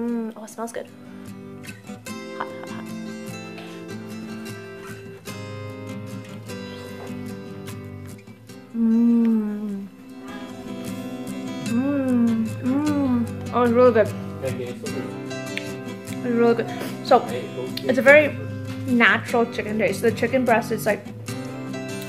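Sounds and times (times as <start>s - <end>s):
acoustic guitar music: 0.0s - 22.0s
person humming mmm: 8.7s - 13.5s.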